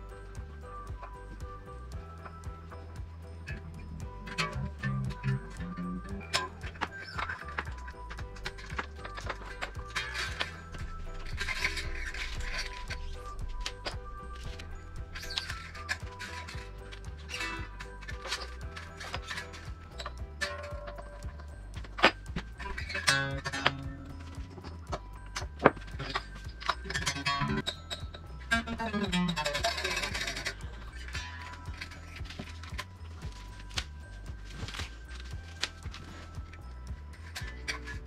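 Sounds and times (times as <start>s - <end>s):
background music with bass: 0.0s - 38.0s
guitar string clicks and scrapes: 2.2s - 38.0s.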